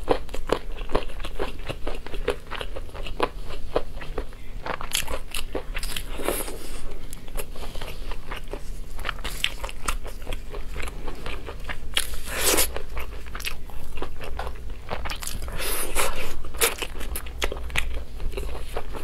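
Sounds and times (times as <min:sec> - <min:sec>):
wet biting and chewing: 0:08.1 - 0:19.0.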